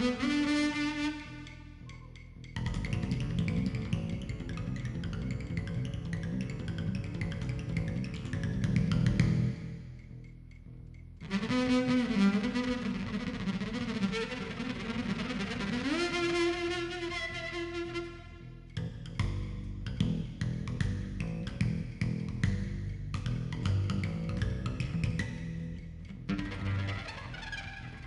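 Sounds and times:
bowed double bass: 0:00.0 - 0:13.3, 0:16.0 - 0:28.0.

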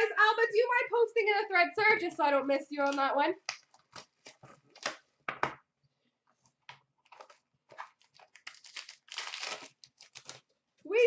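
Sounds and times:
plastic wrapping crinkling and tearing: 0:07.0 - 0:10.6.

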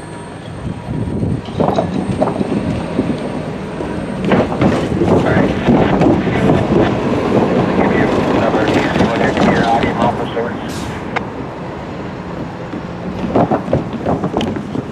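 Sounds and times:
train wheels clicking on track: 0:00.4 - 0:11.3, 0:12.3 - 0:14.9.

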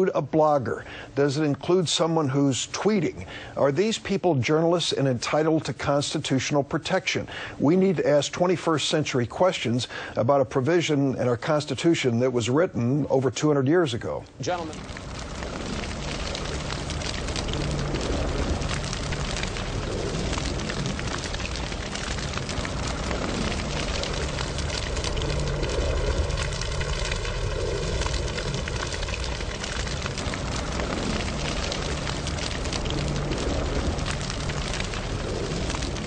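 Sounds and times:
fire-like rushing noise: 0:14.4 - 0:36.0.

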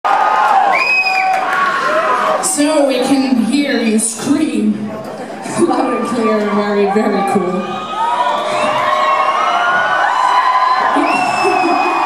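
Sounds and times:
concert audience cheering: 0:00.0 - 0:02.6, 0:05.7 - 0:12.0.

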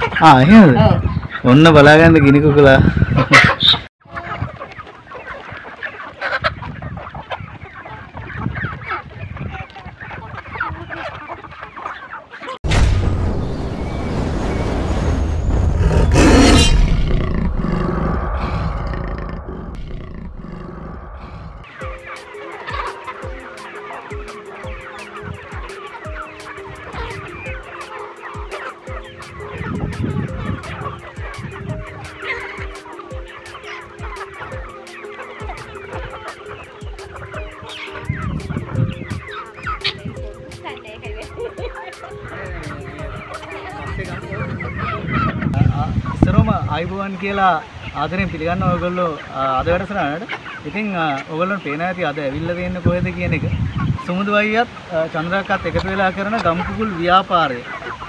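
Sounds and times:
chickens clucking: 0:00.0 - 0:13.0, 0:15.4 - 0:58.0
background music with steady beat: 0:21.7 - 0:45.2.

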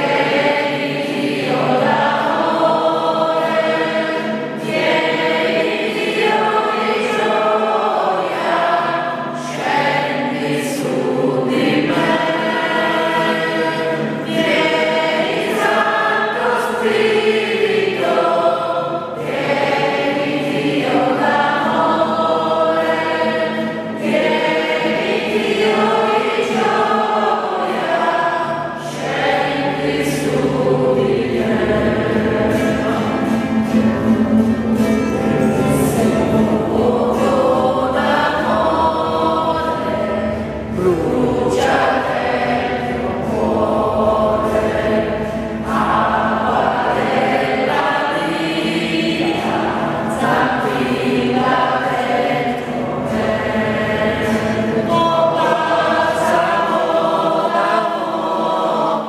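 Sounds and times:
group singing worship song: 0:00.0 - 0:59.0
instrumental accompaniment: 0:00.0 - 0:59.0.

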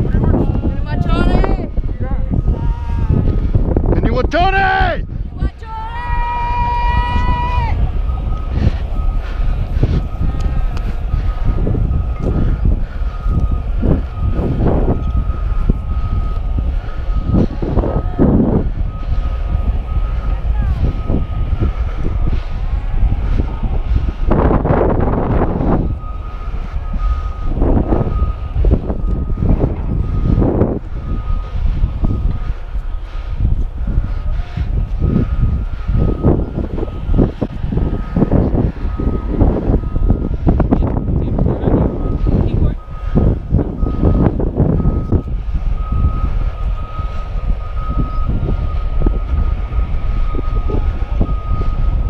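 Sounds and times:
wind rumble: 0:00.0 - 0:52.0
backup alarm beeping: 0:00.8 - 0:05.2, 0:07.1 - 0:52.0.

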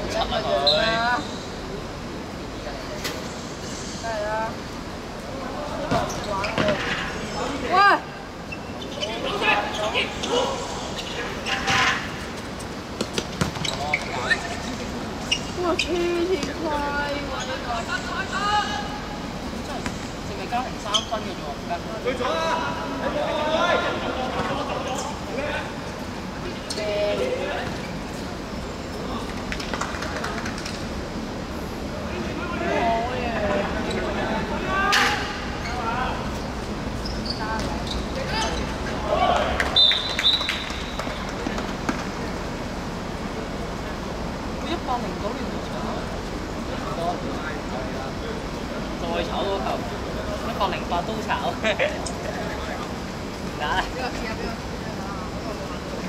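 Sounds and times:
players shouting: 0:17.5 - 0:19.3, 0:38.2 - 0:41.0.

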